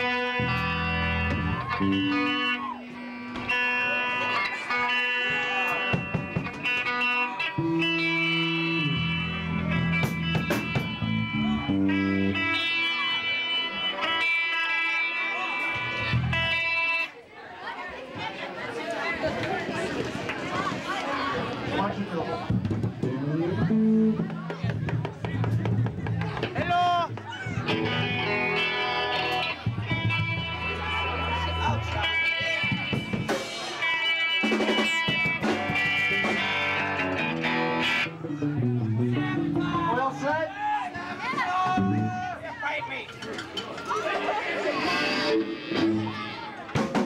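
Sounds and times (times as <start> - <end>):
bass guitar: 0.0 - 17.1, 22.4 - 42.5, 44.2 - 47.0
electric guitar: 0.0 - 17.1, 27.2 - 42.4, 44.0 - 47.0
audience chatter: 0.0 - 47.0
voices: 0.0 - 47.0.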